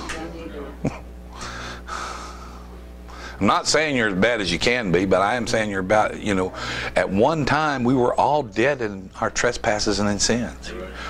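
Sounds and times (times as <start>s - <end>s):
low electrical hum: 0.0s - 11.0s
man breathing into microphone: 1.4s - 3.4s.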